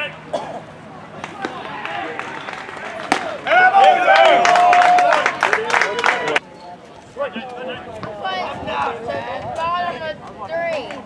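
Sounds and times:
players shouting and clapping: 1.1 - 6.4
baseball popping into mitt: 1.2 - 3.4.

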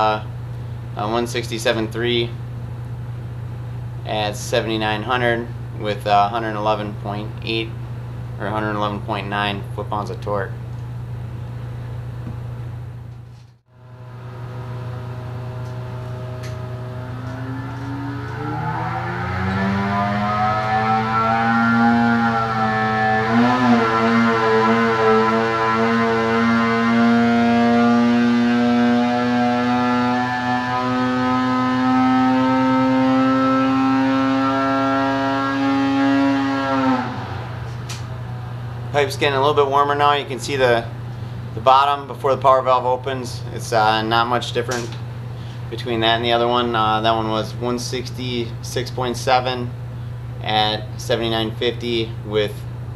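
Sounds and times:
snowmobile engine revving: 14.1 - 40.9.

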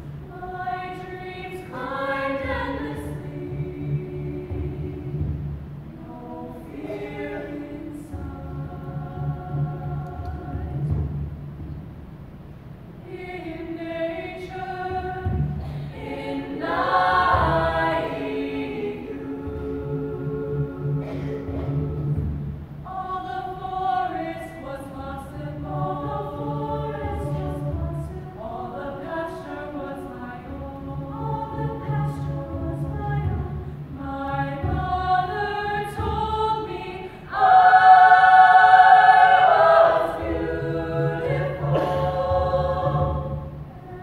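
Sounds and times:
women's choir singing: 0.0 - 11.2, 13.0 - 44.0.

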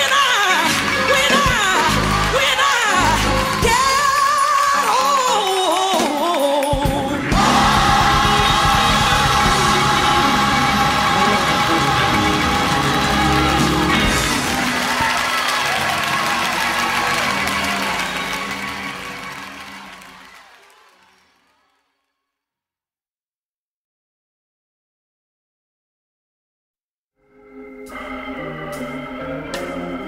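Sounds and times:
person singing: 0.0 - 14.5
band and voices holding chord: 0.0 - 21.2, 27.2 - 30.0.

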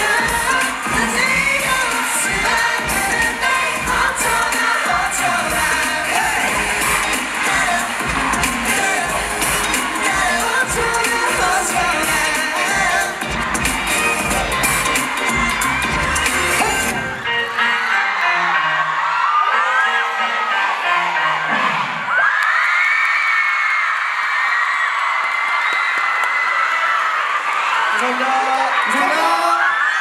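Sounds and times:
dance track with beat: 0.0 - 17.4
audience cheering and screaming: 0.0 - 30.0.

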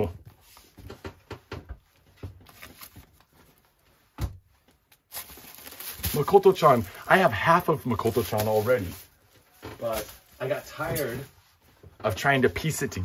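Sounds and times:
books knocking and rustling: 0.0 - 6.9, 7.9 - 12.4.

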